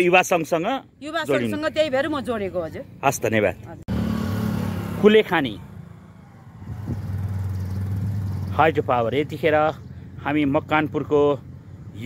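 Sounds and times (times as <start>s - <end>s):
woman speaking: 1.0s - 2.9s
engine humming: 1.4s - 12.0s.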